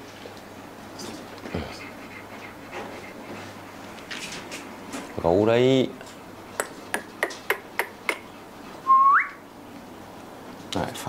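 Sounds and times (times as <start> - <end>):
finger snaps: 6.6 - 8.2
rising whistle: 8.8 - 9.4.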